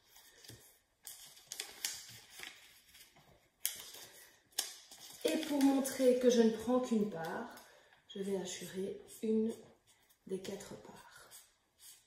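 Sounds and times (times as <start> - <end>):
paper crackle: 0.0 - 7.6
paper rustling: 0.0 - 7.6.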